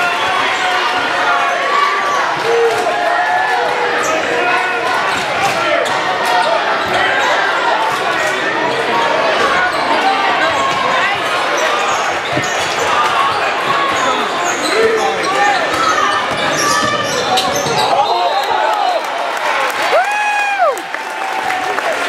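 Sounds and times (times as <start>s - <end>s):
spectators shouting: 0.0s - 22.0s.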